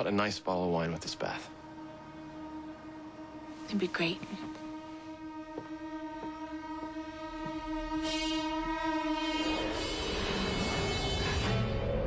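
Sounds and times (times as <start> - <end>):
horn-like droning chord: 0.0 - 12.0.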